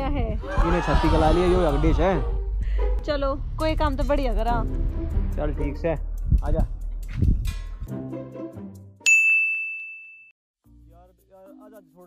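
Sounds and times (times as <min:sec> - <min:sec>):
bright bell-like ding: 0:09.0 - 0:10.4
quiet music: 0:10.6 - 0:12.0.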